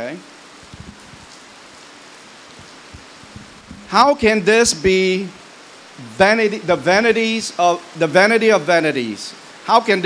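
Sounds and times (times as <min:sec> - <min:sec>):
steady hiss: 0:00.0 - 0:10.0
faint low ticks: 0:00.7 - 0:01.5, 0:02.6 - 0:04.0.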